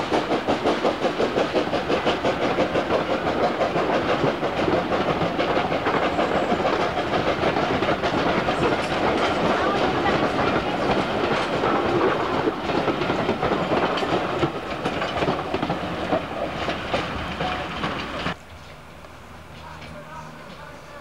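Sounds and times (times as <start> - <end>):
train wheels clattering over rail joints: 0.0 - 18.8.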